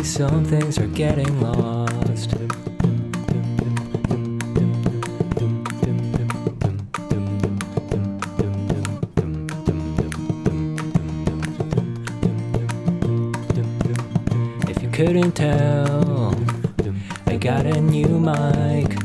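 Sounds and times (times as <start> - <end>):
acoustic guitars picking and strumming: 0.0 - 19.0.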